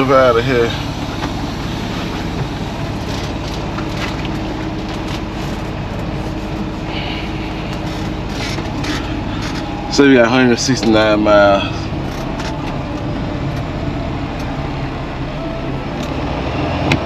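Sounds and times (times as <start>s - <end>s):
diesel engine idling: 0.0s - 17.0s.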